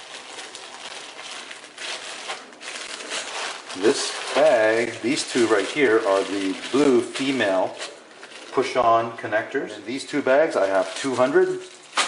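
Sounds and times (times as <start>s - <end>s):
plastic bags crinkling: 0.0s - 9.1s, 9.9s - 12.0s.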